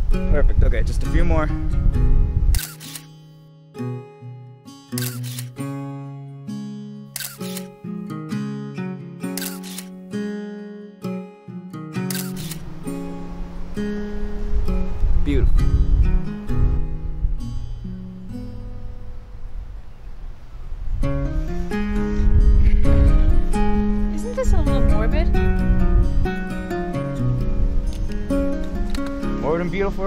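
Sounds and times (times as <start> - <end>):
slow acoustic guitar music: 0.0 - 30.0
camera shutter firing: 2.6 - 3.1, 5.0 - 5.6, 7.2 - 7.7, 9.3 - 9.9, 12.1 - 12.7.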